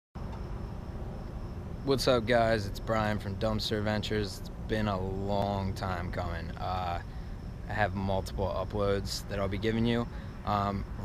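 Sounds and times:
crickets chirping: 0.2 - 11.0.

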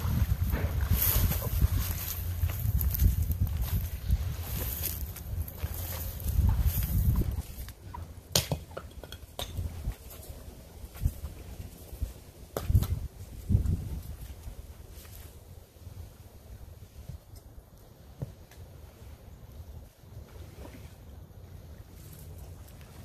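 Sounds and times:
wind buffeting microphone: 0.0 - 8.0, 9.6 - 15.0.

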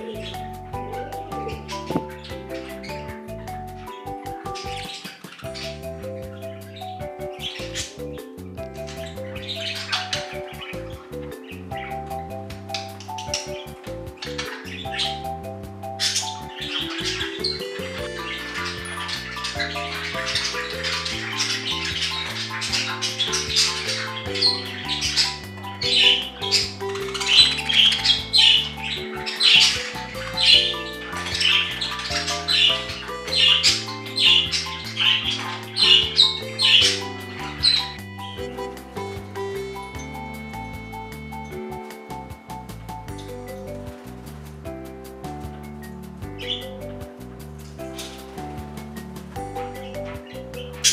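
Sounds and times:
budgerigars chirping and squawking: 0.0 - 44.4, 45.3 - 47.0, 47.6 - 50.9
background music: 0.0 - 50.9.

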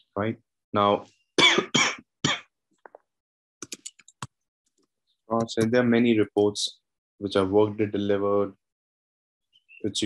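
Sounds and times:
person coughing: 1.4 - 2.5.

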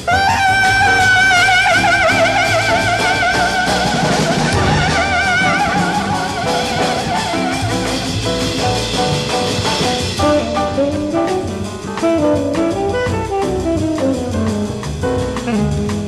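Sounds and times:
double bass: 0.0 - 16.0
drums beating steadily: 0.0 - 16.0
piano: 0.0 - 16.0
tenor saxophone: 0.0 - 16.0.

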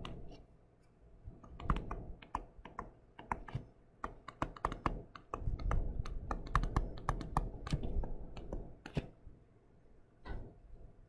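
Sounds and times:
stylus tapping on tablet screen: 1.4 - 9.1.

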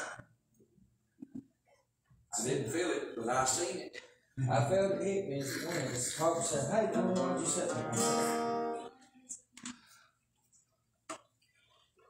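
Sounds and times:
acoustic guitar strummed: 6.4 - 8.9.

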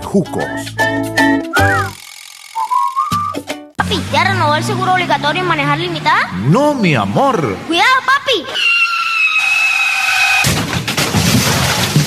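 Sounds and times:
high-pitched screech: 1.6 - 3.3, 8.4 - 10.5.

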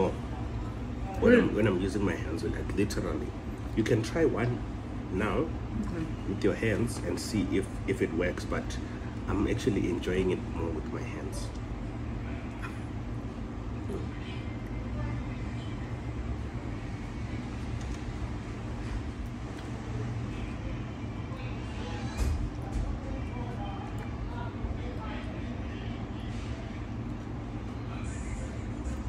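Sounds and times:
faint indistinct voices: 13.6 - 17.7, 19.7 - 29.0.

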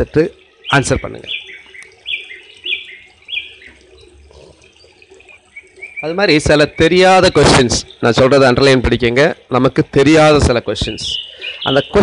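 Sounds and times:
small bird chirping: 0.5 - 8.1.

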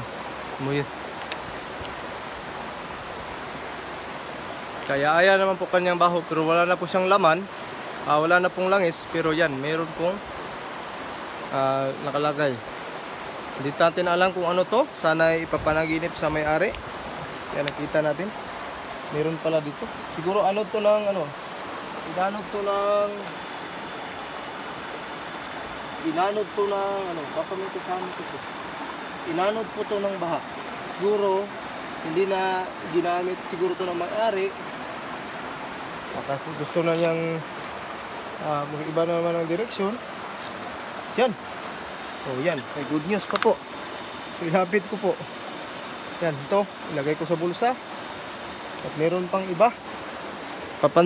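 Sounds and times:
stream water rushing: 0.0 - 51.0.

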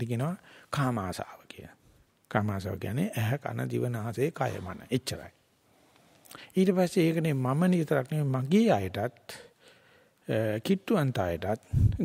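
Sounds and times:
man speaking: 0.0 - 5.4, 6.5 - 9.5, 10.3 - 12.0.

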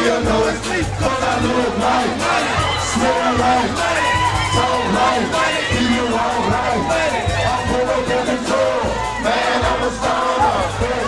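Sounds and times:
crowd shouting: 0.0 - 11.0
hip-hop music with deep bass: 0.0 - 11.0.

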